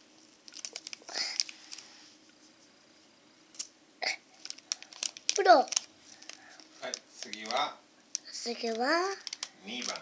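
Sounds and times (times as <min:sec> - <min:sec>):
foil sachet crinkling: 0:00.2 - 0:02.0, 0:04.3 - 0:10.0.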